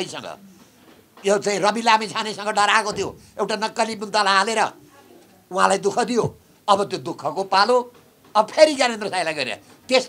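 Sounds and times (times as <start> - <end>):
man speaking: 0.0 - 0.4, 1.2 - 4.9, 5.5 - 10.0.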